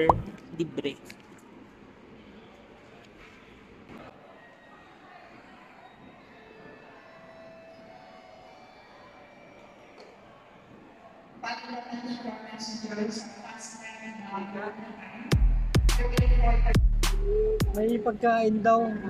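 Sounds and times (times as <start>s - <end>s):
distant indistinct voices: 1.8s - 15.2s.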